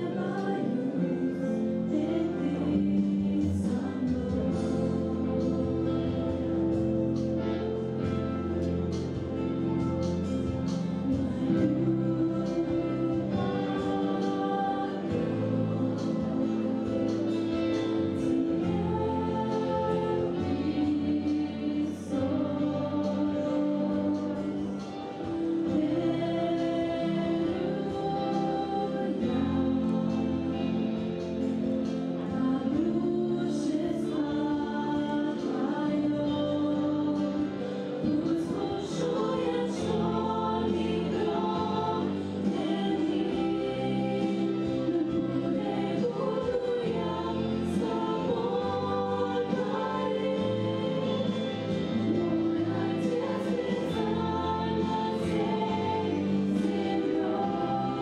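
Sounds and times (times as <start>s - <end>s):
women singing together: 0.0s - 58.0s.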